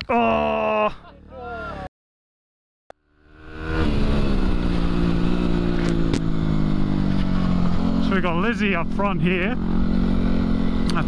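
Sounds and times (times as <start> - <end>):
motorcycle engine cruising: 3.0 - 11.0.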